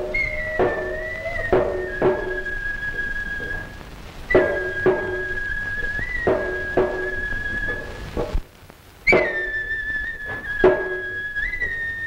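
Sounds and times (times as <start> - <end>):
hand drum strikes: 0.0 - 8.4, 9.1 - 11.9
shrill flute note: 0.0 - 8.4, 9.1 - 12.0.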